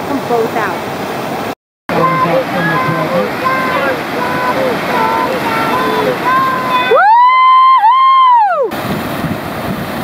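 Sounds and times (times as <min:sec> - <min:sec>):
whitewater rushing: 0:00.0 - 0:10.0
high-pitched voices calling: 0:01.9 - 0:07.0
loud siren-like tone: 0:01.9 - 0:07.6.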